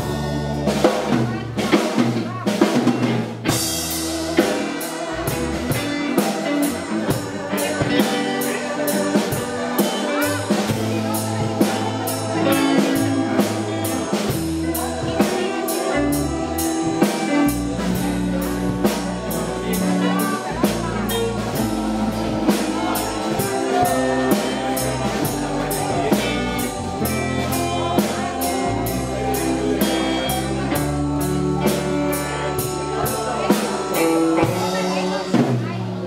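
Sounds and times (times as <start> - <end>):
drum kit steady beat: 0.0 - 36.0
electric guitars: 0.0 - 36.0
keyboard: 0.0 - 36.0.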